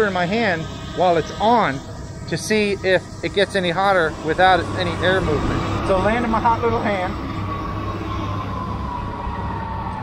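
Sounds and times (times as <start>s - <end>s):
drone propellers whining: 0.0s - 10.0s
low rumble: 0.0s - 10.0s.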